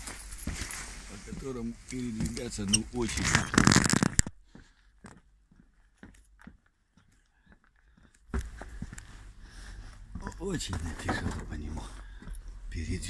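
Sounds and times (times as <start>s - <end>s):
footsteps on insulation and boards: 0.0s - 2.6s, 4.4s - 12.5s.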